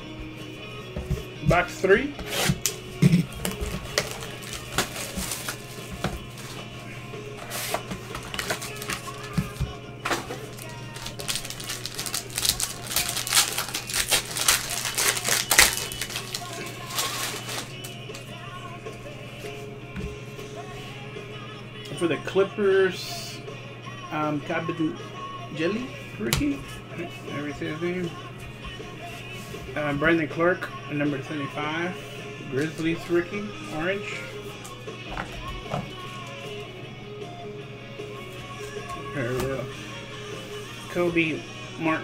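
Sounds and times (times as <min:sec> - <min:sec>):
plastic wrap crinkling and tearing: 0:03.6 - 0:06.6, 0:07.4 - 0:18.0.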